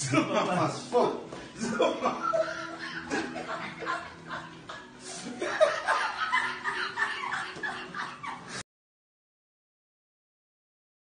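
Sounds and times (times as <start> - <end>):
man laughing: 1.6 - 8.6.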